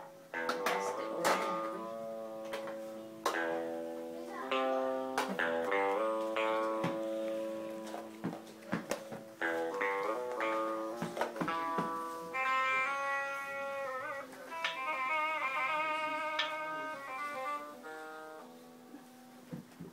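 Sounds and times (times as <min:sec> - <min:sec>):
toy guitar melody: 0:00.0 - 0:19.2.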